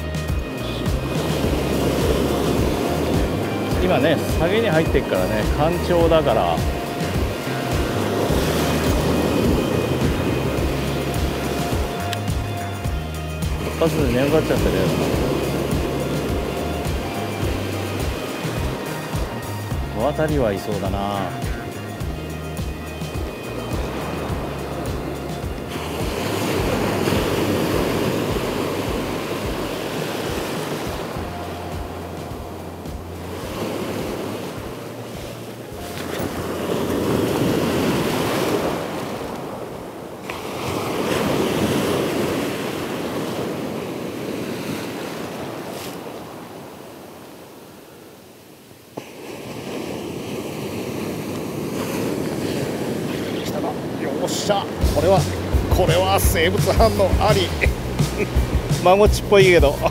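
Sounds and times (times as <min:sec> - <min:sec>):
background music: 0:00.0 - 0:44.4, 0:53.0 - 0:59.9
ocean surf breaking on beach: 0:00.0 - 0:59.9.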